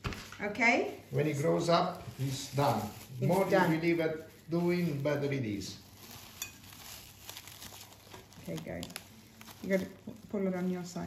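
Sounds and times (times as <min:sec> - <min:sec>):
plastic cling film crinkling: 0:00.0 - 0:11.0.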